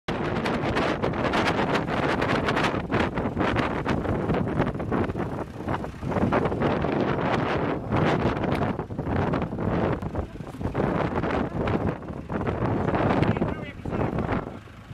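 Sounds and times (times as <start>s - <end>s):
tractor diesel engine running: 0.1s - 14.9s
wind buffeting microphone: 0.1s - 14.9s.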